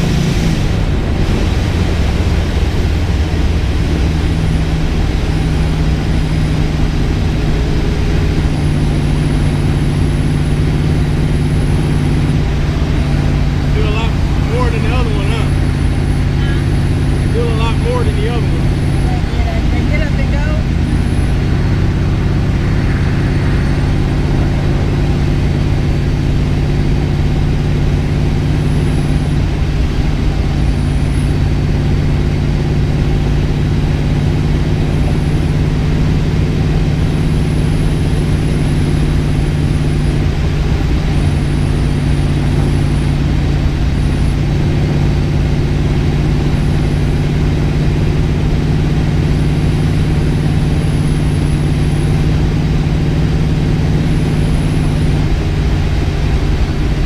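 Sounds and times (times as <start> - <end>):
car engine cruising drone: 0.0 - 57.0.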